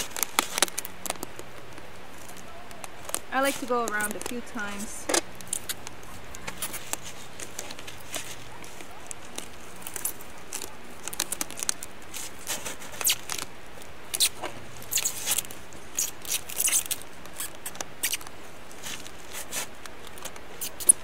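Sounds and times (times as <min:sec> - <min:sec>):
packing tape tearing off roll: 0:00.0 - 0:21.0
plastic jug crinkling: 0:00.0 - 0:21.0.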